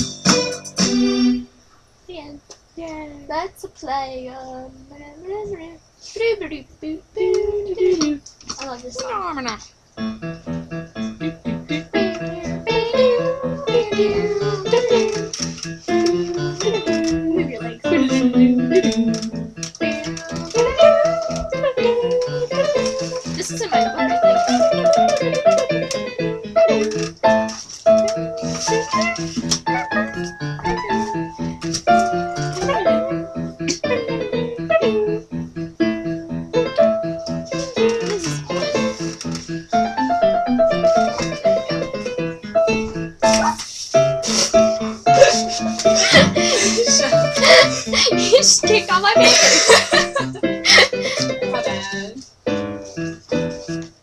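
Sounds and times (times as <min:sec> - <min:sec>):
person singing wordlessly: 0:00.0 - 0:01.5, 0:06.4 - 0:08.2, 0:11.0 - 0:25.3, 0:31.9 - 0:35.2.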